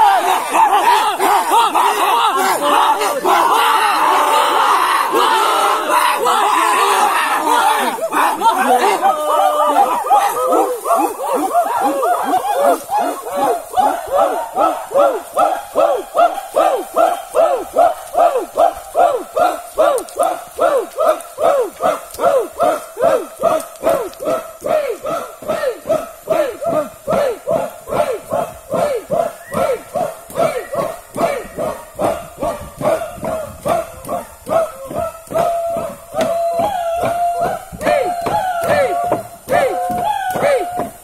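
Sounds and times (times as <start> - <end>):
men chanting war cry: 0.0 - 41.0.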